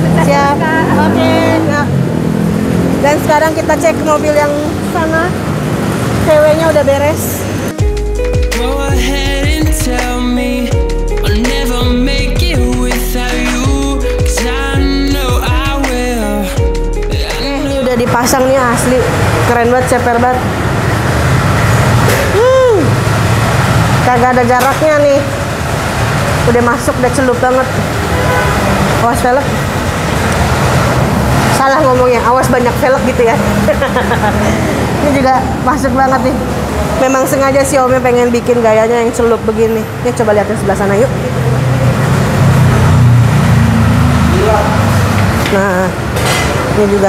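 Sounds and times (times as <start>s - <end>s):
person exclaiming wooow: 22.3s - 23.0s.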